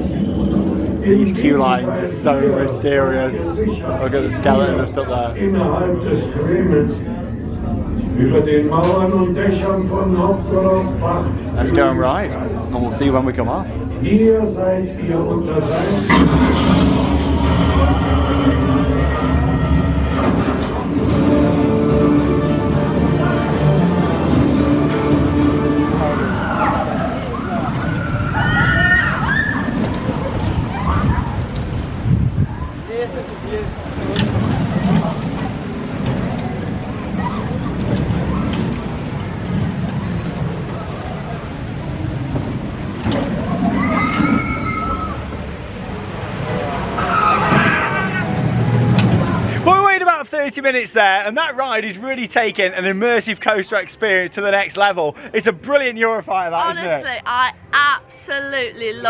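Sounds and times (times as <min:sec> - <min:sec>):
roller coaster rumbling on track: 0:00.0 - 0:59.0
riders screaming: 0:26.1 - 0:31.5, 0:43.6 - 0:45.3, 0:47.0 - 0:49.6.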